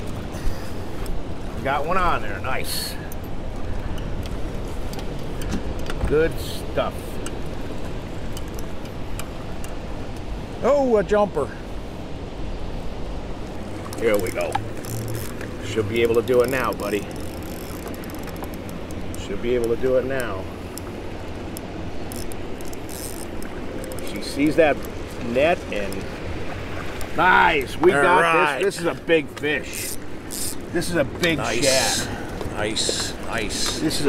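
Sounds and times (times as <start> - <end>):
boat motor rumbling: 0.0 - 34.0
rushing river water: 0.0 - 34.0
wind: 0.0 - 34.0.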